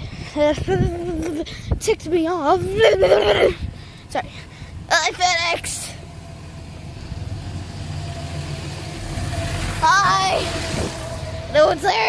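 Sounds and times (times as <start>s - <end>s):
van engine idling: 3.4s - 12.0s.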